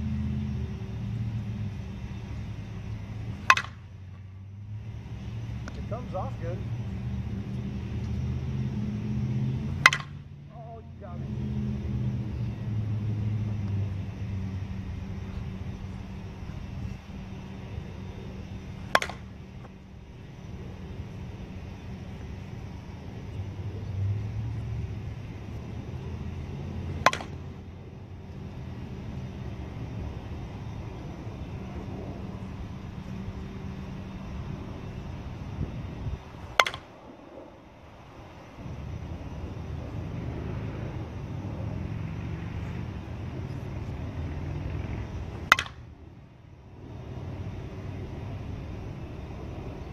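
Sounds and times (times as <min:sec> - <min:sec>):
softball bat hitting balls: 0:01.8 - 0:10.8, 0:14.7 - 0:20.4, 0:24.5 - 0:29.1, 0:36.4 - 0:37.2, 0:45.1 - 0:46.0.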